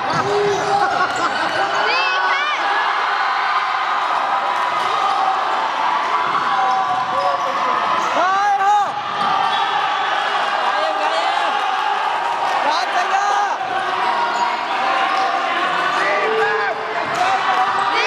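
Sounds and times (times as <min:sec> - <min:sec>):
chatter of players and spectators: 0:00.0 - 0:18.0
loud shout: 0:00.0 - 0:18.0.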